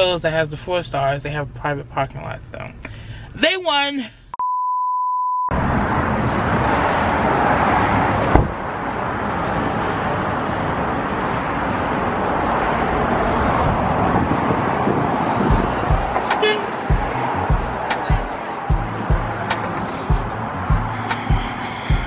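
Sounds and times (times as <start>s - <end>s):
wind on microphone: 12.8s - 15.9s.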